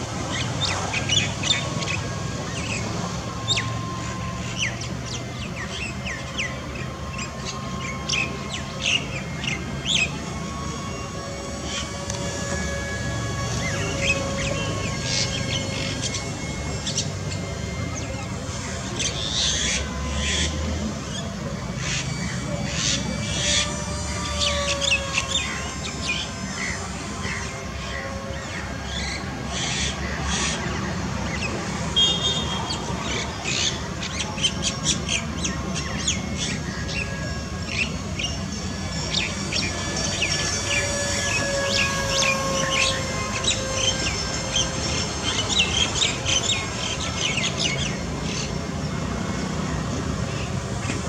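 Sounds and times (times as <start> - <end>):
birds chirping and calling: 0.0 - 51.0
electric motor whine: 0.0 - 51.0.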